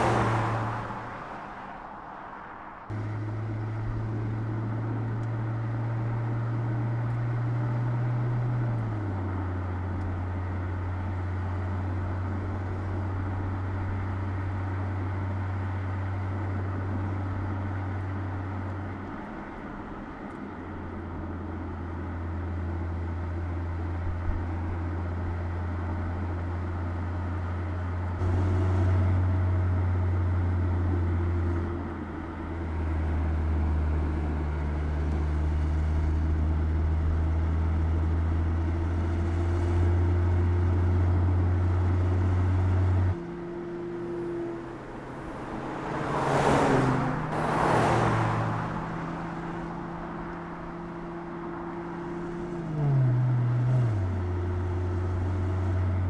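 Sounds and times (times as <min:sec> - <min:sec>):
car engine hum: 0:00.0 - 0:56.0
road and tyre noise: 0:00.0 - 0:56.0.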